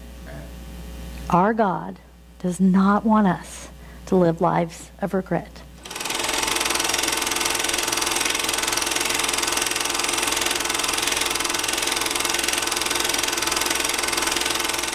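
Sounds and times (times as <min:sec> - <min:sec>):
film projector clattering: 0:05.8 - 0:14.9.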